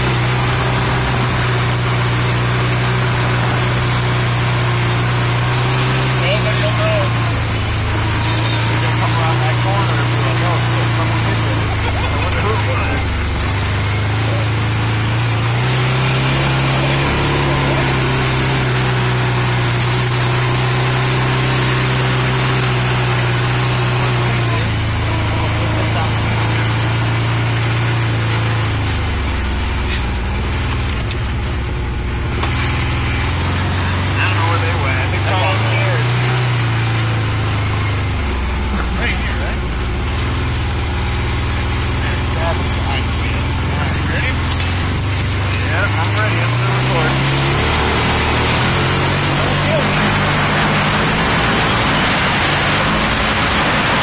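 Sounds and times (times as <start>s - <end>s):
off-road vehicle engine: 0.0s - 54.0s.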